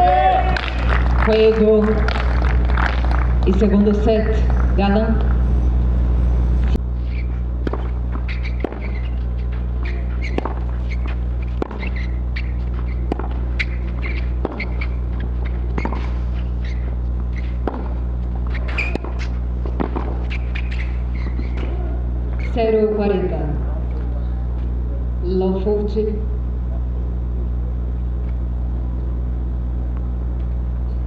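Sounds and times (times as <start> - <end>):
steady low hum: 0.0 - 31.0
racket striking tennis ball: 7.0 - 21.8
tennis ball bouncing on clay: 7.6 - 21.7.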